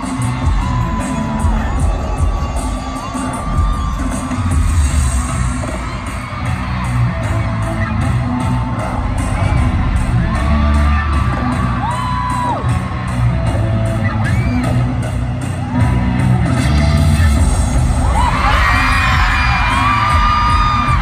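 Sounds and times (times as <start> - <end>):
crowd cheering and screaming: 0.0 - 21.0
music with heavy bass: 0.0 - 21.0.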